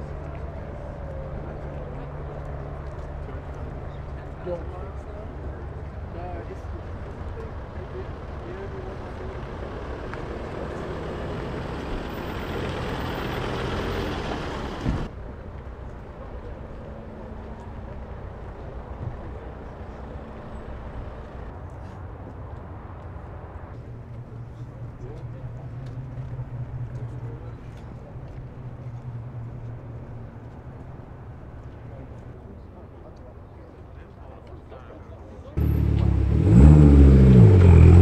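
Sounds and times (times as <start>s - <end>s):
outdoor noise: 0.0s - 38.0s
car engine running: 35.6s - 38.0s.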